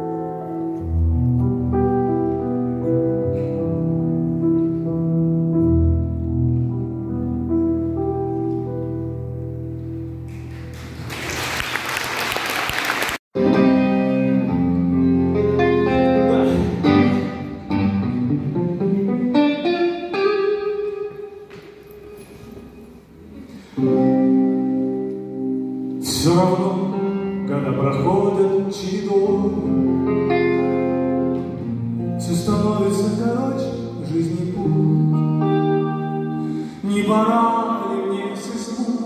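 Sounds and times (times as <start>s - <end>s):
guitar: 0.0s - 11.2s, 13.4s - 39.0s
person singing: 26.0s - 39.0s.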